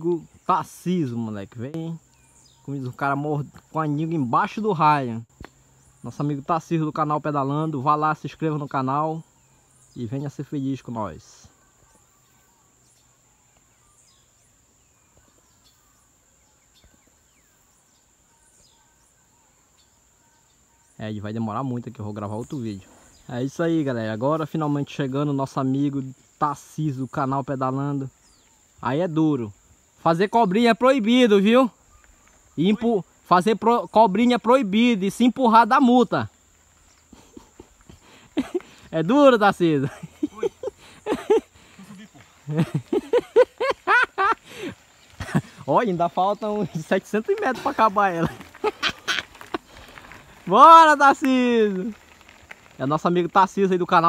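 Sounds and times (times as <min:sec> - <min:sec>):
high insect drone: 0:00.0 - 0:54.0
person laughing: 0:37.1 - 0:38.8, 0:39.8 - 0:45.7, 0:46.5 - 0:49.8.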